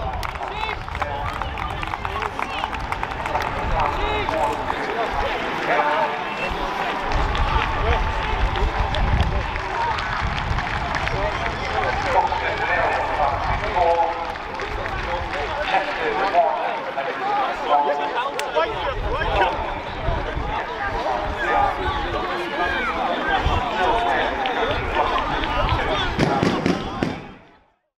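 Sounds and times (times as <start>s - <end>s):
indistinct chatter of voices: 0.0s - 27.8s.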